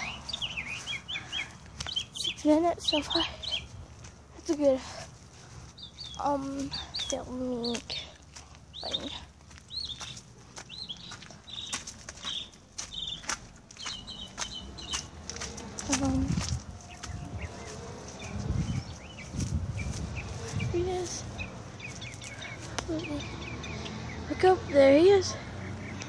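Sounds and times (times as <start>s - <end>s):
small bird chirping: 0.0s - 3.8s, 5.5s - 26.0s
footsteps: 0.0s - 23.4s.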